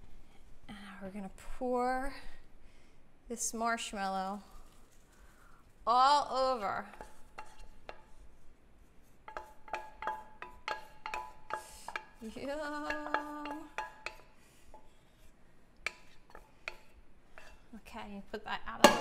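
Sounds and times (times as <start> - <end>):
wooden spoon scraping saucepan: 6.5 - 8.4, 9.0 - 17.9.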